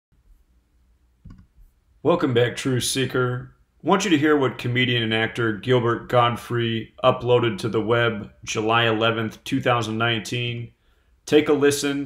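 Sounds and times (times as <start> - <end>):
computer mouse click: 1.2 - 1.5.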